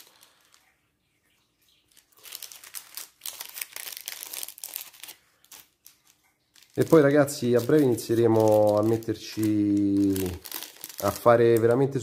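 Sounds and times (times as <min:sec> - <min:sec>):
plastic bags and paper crinkling: 0:00.0 - 0:00.8, 0:01.7 - 0:12.0.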